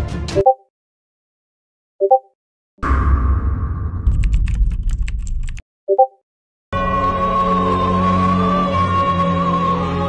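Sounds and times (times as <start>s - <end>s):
low rumble: 2.8s - 5.5s
keyboard typing: 4.1s - 6.1s.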